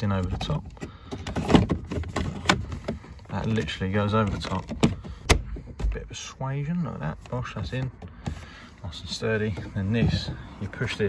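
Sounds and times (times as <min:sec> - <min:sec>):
hard plastic rubbing and knocking: 0:00.0 - 0:06.1, 0:07.0 - 0:11.0.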